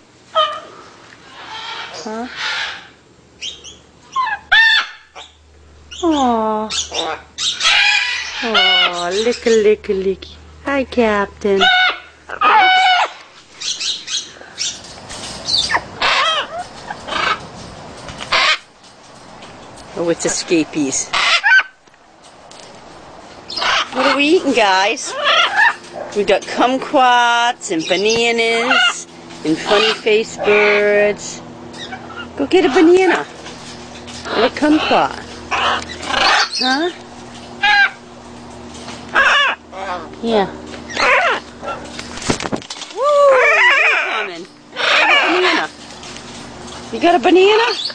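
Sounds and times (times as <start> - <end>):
macaws squawking: 0.3 - 6.1, 6.7 - 9.8, 11.5 - 14.9, 15.5 - 17.5, 18.2 - 18.7, 20.3 - 21.8, 23.5 - 38.2, 38.8 - 40.2, 40.8 - 42.0, 43.4 - 46.0, 47.0 - 47.9.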